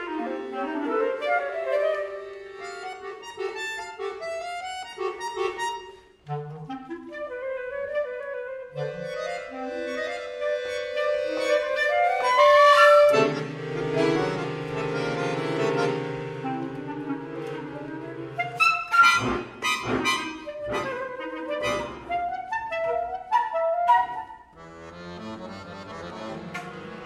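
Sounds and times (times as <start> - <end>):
flute clarinet and accordion trio: 0.0 - 27.0.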